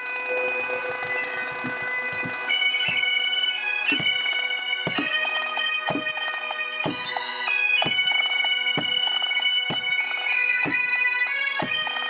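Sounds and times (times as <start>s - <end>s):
bagpipes holding a long note: 0.5s - 12.0s.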